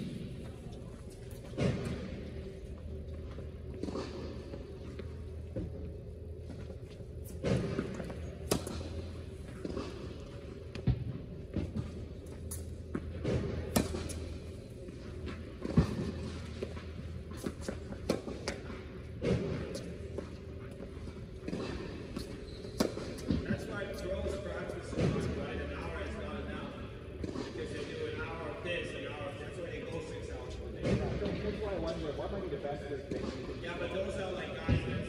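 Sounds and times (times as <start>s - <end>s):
tennis balls bouncing on hard court: 7.3s - 14.4s, 21.3s - 25.4s
tennis balls struck by racquets: 7.3s - 14.6s, 15.2s - 20.4s, 21.3s - 25.5s
people talking: 23.4s - 26.8s, 27.4s - 35.0s.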